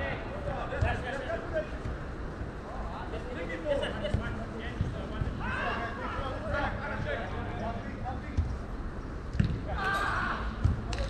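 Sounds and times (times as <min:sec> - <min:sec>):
football being kicked: 0:09.3 - 0:09.6
players shouting: 0:09.7 - 0:10.9.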